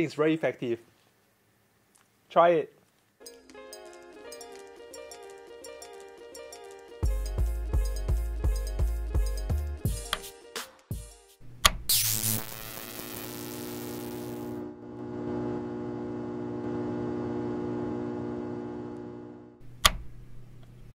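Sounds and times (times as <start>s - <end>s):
steady electric buzz: 11.4s - 20.2s
switch click: 11.5s - 11.9s, 19.6s - 20.8s.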